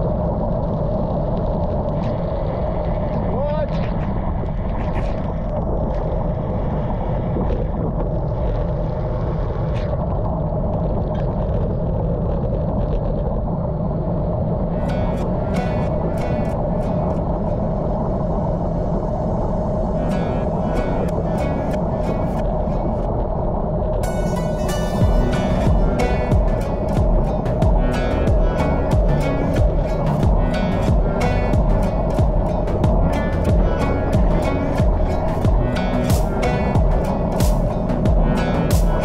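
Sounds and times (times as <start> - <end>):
wind and tyre noise: 0.0 - 39.0
background music: 14.8 - 23.1, 24.0 - 39.0
bright high notes: 24.0 - 39.0.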